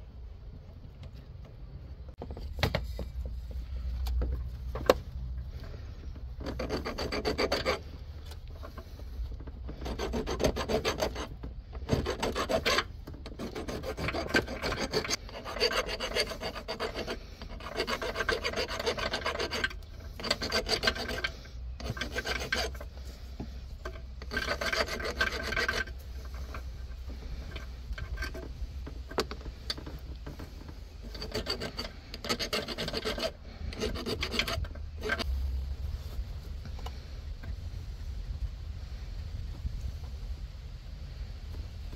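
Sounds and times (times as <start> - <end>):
metal file scraping metal: 5.5 - 35.4.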